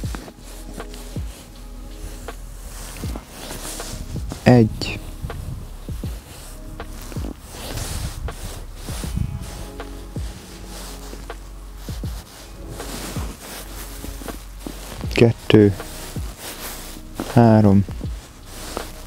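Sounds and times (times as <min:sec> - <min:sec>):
faint background music: 0:00.0 - 0:19.0
padded jacket rustling: 0:00.0 - 0:19.0.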